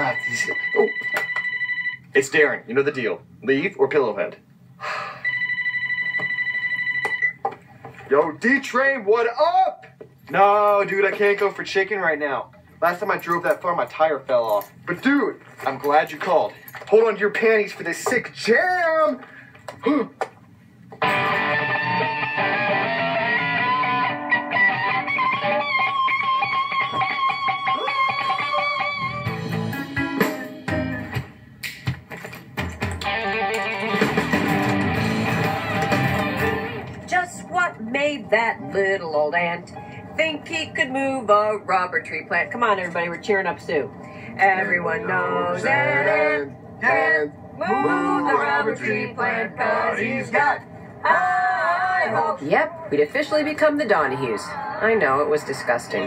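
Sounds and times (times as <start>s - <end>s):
phone ringing with electronic trill: 0.0s - 2.1s, 5.2s - 7.4s
faint music: 32.7s - 56.0s.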